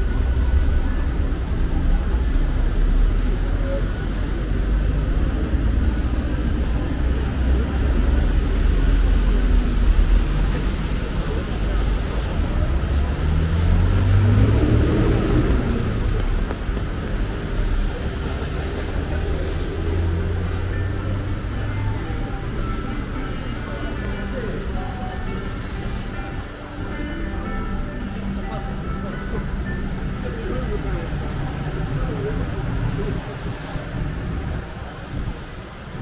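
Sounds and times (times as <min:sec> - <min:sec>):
low rumble of traffic: 0:00.0 - 0:36.0
vehicle passing: 0:12.7 - 0:20.6.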